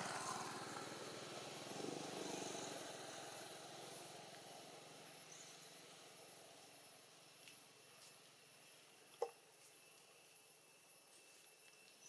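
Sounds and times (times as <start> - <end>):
high-pitched whine: 0.0 - 7.4.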